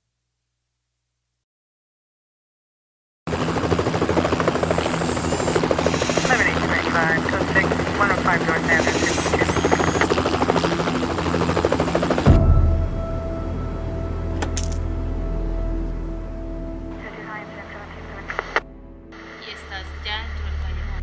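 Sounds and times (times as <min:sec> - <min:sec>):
low mechanical drone: 0:03.3 - 0:21.0
person talking: 0:06.0 - 0:10.0
music: 0:11.6 - 0:21.0.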